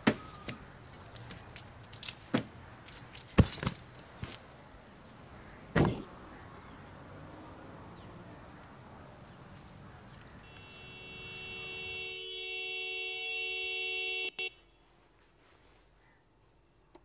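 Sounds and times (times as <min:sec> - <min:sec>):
car horn two-note tone: 0:10.4 - 0:14.8.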